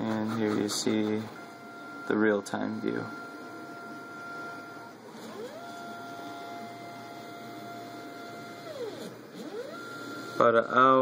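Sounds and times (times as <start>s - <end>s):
stepper motors whining: 0.0s - 10.5s.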